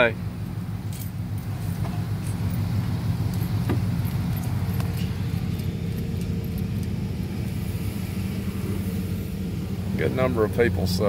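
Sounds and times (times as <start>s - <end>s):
car engine and road rumble: 0.0s - 11.0s
faint light clinks: 0.8s - 7.1s.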